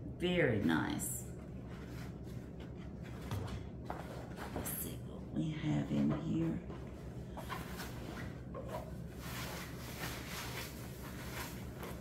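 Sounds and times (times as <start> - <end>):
wrapping paper rustling and crinkling: 6.7 - 12.0.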